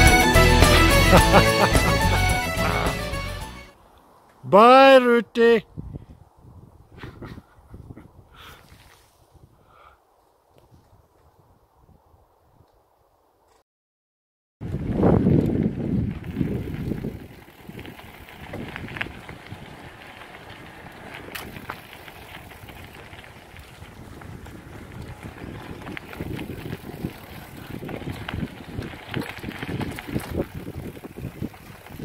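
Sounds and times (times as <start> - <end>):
bike tyres on gravel: 8.4 - 13.6, 14.6 - 32.0
bike clicks and rattles: 15.3 - 32.0.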